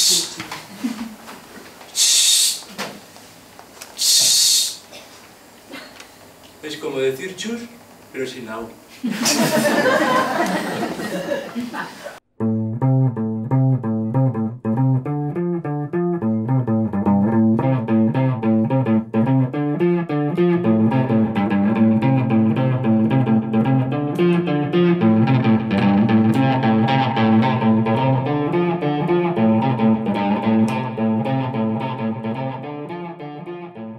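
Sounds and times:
plucked guitar pattern: 12.4 - 33.9.

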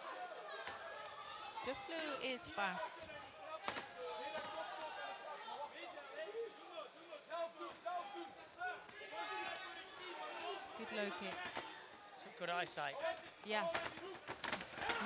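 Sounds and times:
voices calling and shouting: 0.0 - 15.0.

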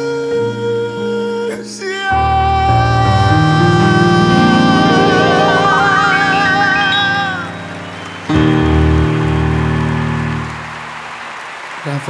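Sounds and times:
man singing vibrato note: 0.0 - 8.2
deep piano chord: 2.0 - 11.2
applause: 6.1 - 12.0.

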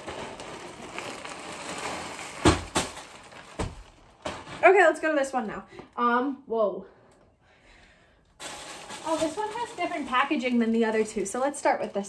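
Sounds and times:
plastic bag rustling: 0.0 - 5.2, 8.4 - 12.0.

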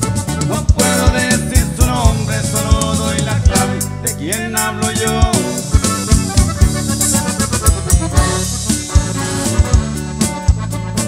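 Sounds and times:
bass: 0.0 - 11.0
button accordion melody: 0.0 - 11.0
drum kit beat: 0.0 - 11.0.

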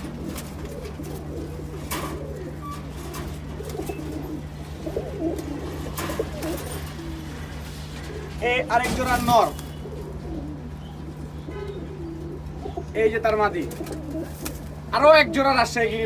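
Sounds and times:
pigeons cooing: 0.0 - 16.0
steady low hum: 0.0 - 16.0.

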